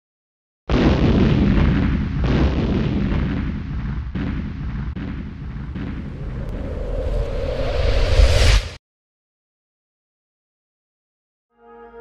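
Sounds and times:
deep crashing rumble: 0.7 - 8.8
rising bright whoosh: 6.3 - 8.8.

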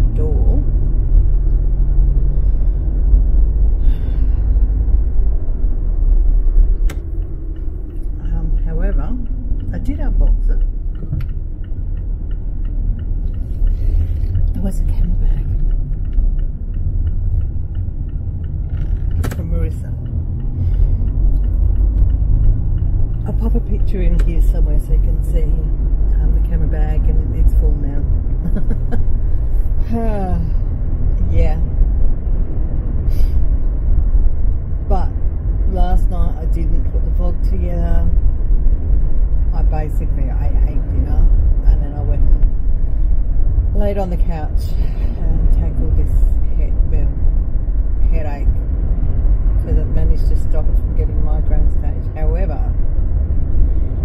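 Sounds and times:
woman talking: 0.0 - 0.7, 8.2 - 10.7, 14.5 - 15.6, 19.2 - 20.0, 23.2 - 29.0, 29.8 - 31.8, 34.8 - 38.2, 39.5 - 42.4, 43.7 - 47.2, 48.0 - 48.6, 49.6 - 52.8
car cabin road rumble: 0.0 - 54.0.

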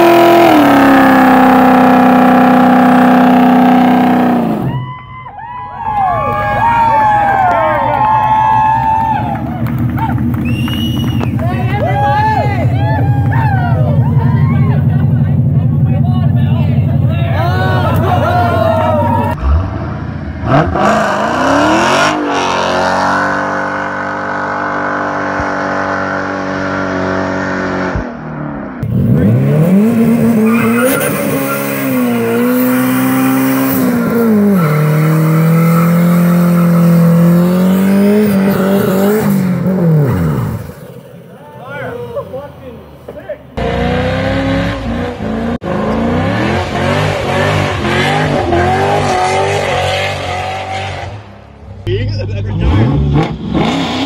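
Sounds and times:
car engines revving hard: 0.0 - 4.7, 12.5 - 41.1, 43.5 - 54.0
tires spinning and squealing: 17.2 - 27.3, 28.8 - 42.5, 43.6 - 51.2.

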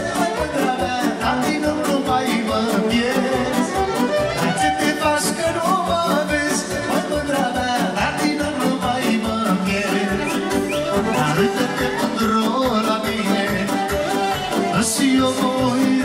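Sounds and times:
band playing fast dance beat: 0.0 - 16.0
man singing: 0.0 - 16.0.

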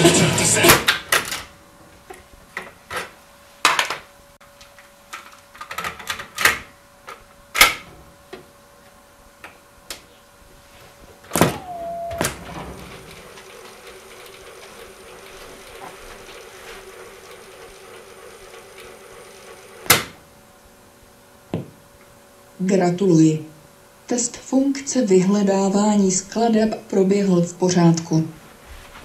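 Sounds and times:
tape winding whine: 11.4 - 19.8.

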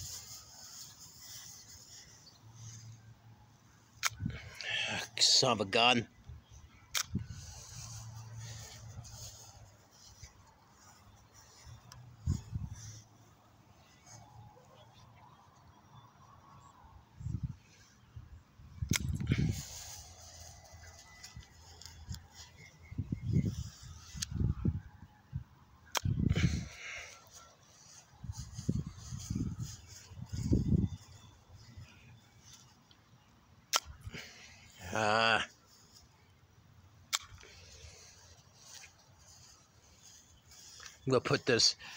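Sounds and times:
sharp clicks: 4.0 - 4.2, 6.9 - 7.2, 18.9 - 19.3, 25.9 - 26.2, 33.7 - 34.0, 37.1 - 37.5.

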